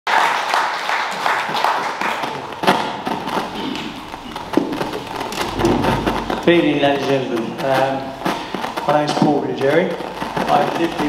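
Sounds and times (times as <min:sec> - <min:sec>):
audience clapping: 0:00.0 - 0:08.9
thumps: 0:02.6 - 0:11.0
low rumble: 0:05.1 - 0:07.0.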